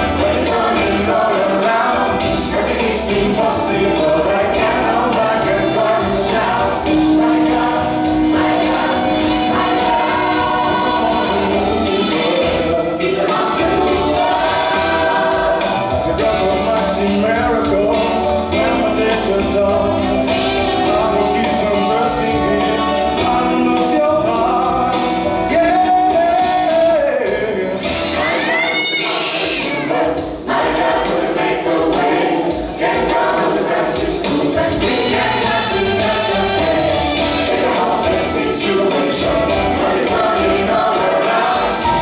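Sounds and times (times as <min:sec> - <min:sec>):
gospel choir singing: 0:00.0 - 0:42.0
instrumental backing: 0:00.0 - 0:42.0.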